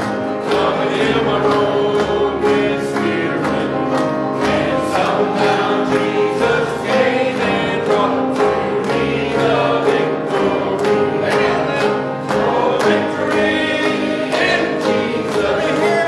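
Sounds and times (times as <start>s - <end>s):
congregation singing a hymn: 0.0s - 16.0s
instrumental accompaniment: 0.0s - 16.0s.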